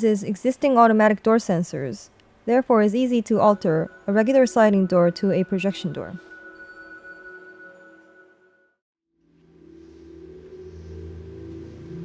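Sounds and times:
low electronic drone: 0:09.2 - 0:12.0.

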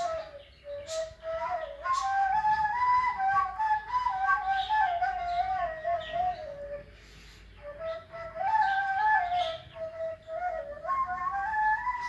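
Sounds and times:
breathy reed flute melody: 0:00.0 - 0:12.0.

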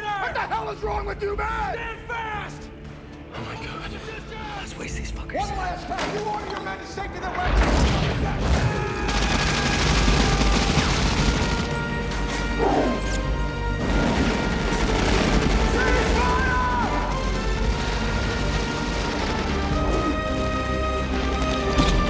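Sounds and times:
orchestral score: 0:00.0 - 0:22.0
rifle fire: 0:07.5 - 0:12.4, 0:13.8 - 0:20.1.

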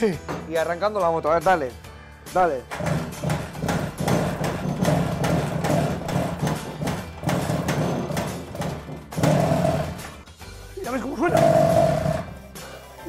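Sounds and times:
motorcycle engine starting and running: 0:04.4 - 0:10.2, 0:11.3 - 0:12.4.

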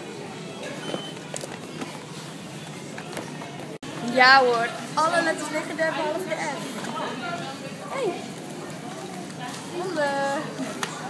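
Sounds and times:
supermarket hubbub: 0:00.0 - 0:11.0.

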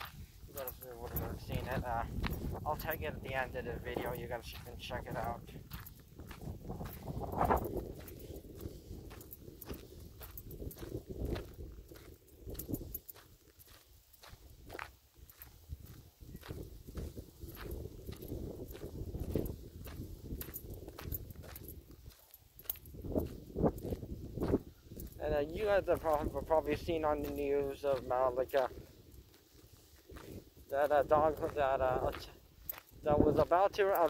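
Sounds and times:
footsteps on a trail: 0:00.0 - 0:34.0.

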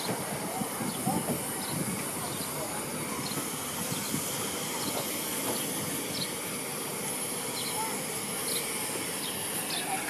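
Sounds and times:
steam hissing: 0:00.0 - 0:10.0.

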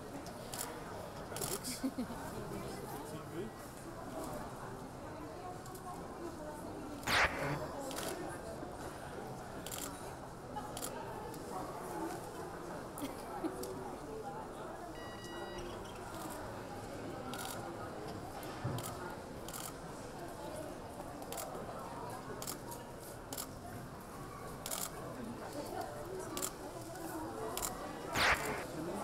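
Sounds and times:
hubbub of voices: 0:00.0 - 0:29.0
rush of noise: 0:07.1 - 0:07.7, 0:28.2 - 0:28.6
camera shutters clicking: 0:07.1 - 0:08.1, 0:28.2 - 0:28.6
short electronic beep: 0:15.0 - 0:15.8.

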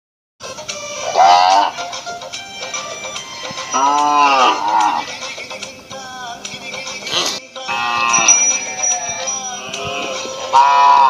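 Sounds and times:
background music: 0:00.4 - 0:11.0
cow moo sound effect: 0:03.7 - 0:05.2, 0:07.1 - 0:08.3, 0:09.8 - 0:11.0.

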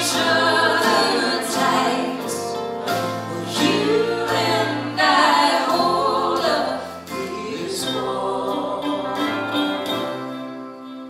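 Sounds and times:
guitars: 0:00.0 - 0:11.0
mandolin: 0:00.0 - 0:11.0
people singing together: 0:00.0 - 0:11.0.

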